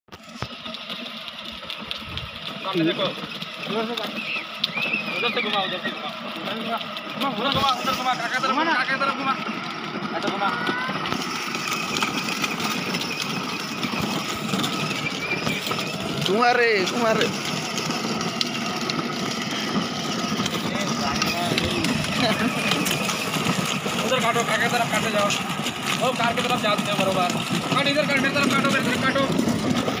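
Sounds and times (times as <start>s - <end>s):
toy car motors whirring: 0.1s - 30.0s.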